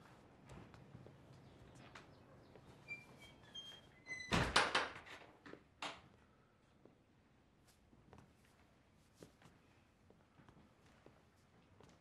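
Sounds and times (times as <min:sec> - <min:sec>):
door squeak: 0:02.9 - 0:04.6.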